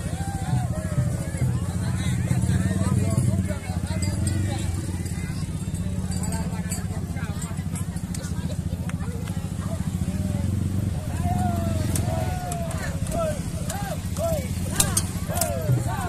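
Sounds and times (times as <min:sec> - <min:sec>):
crowd voices and calls: 0:00.0 - 0:16.0
scooter engines idling: 0:00.0 - 0:16.0.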